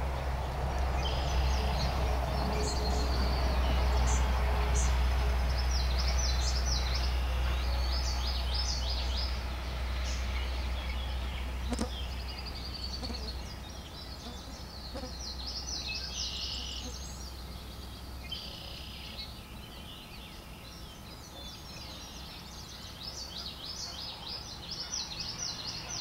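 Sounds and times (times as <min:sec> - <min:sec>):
low steady rumble: 0:00.0 - 0:23.2
small birds chirping: 0:00.0 - 0:26.0.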